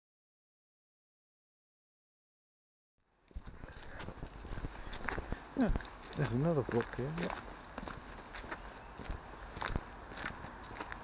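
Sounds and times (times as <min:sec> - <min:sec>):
footsteps on leaf litter: 0:03.3 - 0:11.0.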